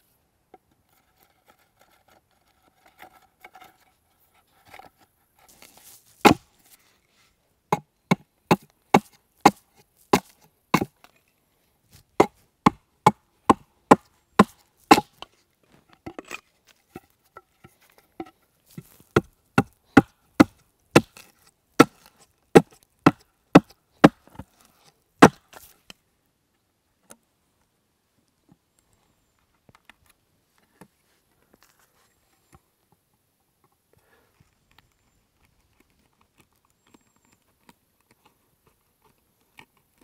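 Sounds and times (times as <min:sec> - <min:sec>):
axe chopping wood: 0:06.2 - 0:06.5, 0:07.7 - 0:11.0, 0:12.2 - 0:15.2, 0:19.2 - 0:24.4, 0:25.2 - 0:25.6.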